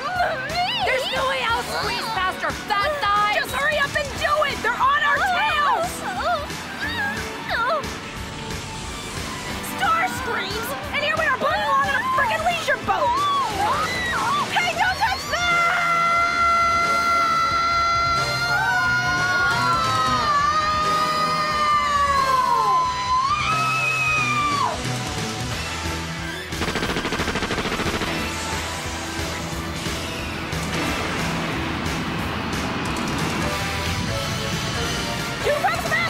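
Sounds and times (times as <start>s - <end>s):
dramatic action soundtrack: 0.0s - 36.0s.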